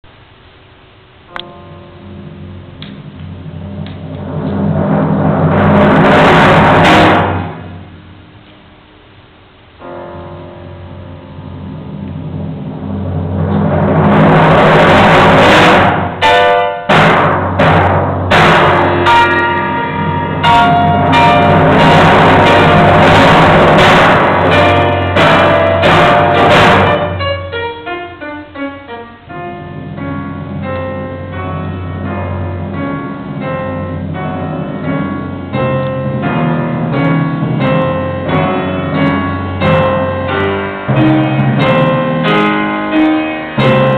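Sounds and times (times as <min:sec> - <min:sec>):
piano chords: 0:00.0 - 0:43.9
timpani roll: 0:01.0 - 0:43.9.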